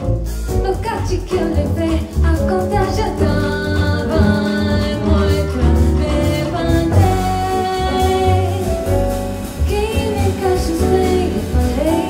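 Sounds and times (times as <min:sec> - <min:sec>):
live jazz band playing: 0:00.0 - 0:12.0
woman singing: 0:00.5 - 0:12.0.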